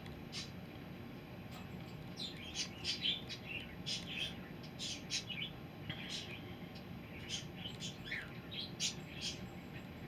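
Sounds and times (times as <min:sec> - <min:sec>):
small birds chirping: 0:00.2 - 0:00.6, 0:02.0 - 0:10.0.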